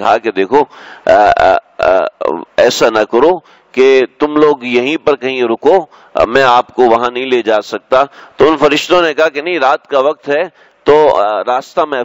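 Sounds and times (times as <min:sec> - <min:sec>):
man speaking: 0:00.0 - 0:12.0.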